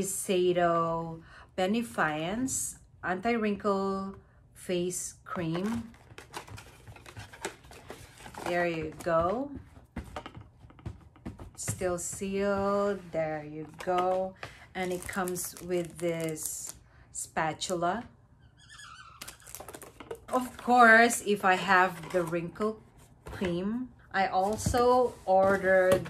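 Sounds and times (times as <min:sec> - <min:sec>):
cardboard clicks and rustles: 0:05.5 - 0:13.0, 0:13.6 - 0:16.5, 0:19.4 - 0:21.2.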